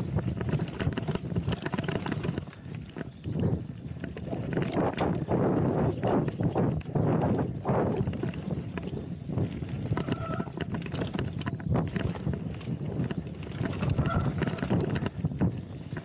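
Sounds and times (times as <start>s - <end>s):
bike chain and frame clattering: 0.0s - 16.0s
bike tyres rolling over dirt: 0.0s - 16.0s
wind rumble on microphone: 0.0s - 16.0s.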